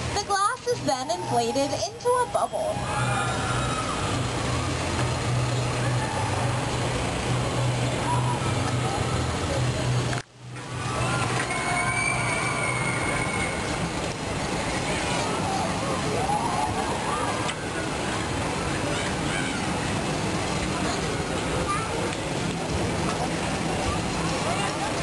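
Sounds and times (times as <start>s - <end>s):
glassblowing furnace roaring: 0.0s - 25.0s
low hum: 0.0s - 25.0s.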